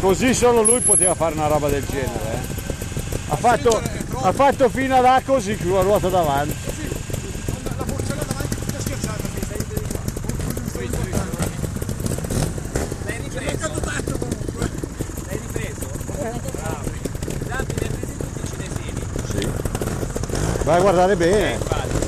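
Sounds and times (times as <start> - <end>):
motorcycle engines idling: 0.0 - 22.0.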